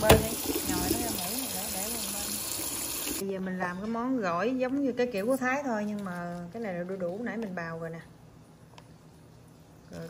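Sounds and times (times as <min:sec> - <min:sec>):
tap water running into colander: 0:00.0 - 0:03.2.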